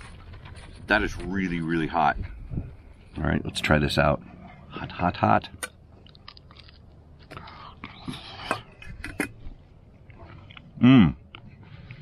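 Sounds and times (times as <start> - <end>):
man chewing crunchy food: 5.7 - 12.0.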